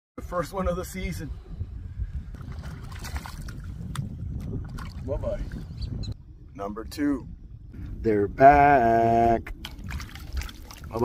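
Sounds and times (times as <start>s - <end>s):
low rumble: 0.2s - 11.0s
water splashing against boat: 2.4s - 5.6s, 9.5s - 11.0s.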